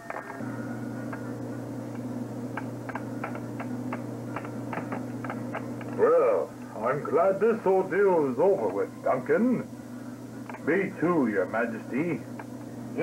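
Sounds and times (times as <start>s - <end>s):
steady low hum: 0.3s - 13.0s.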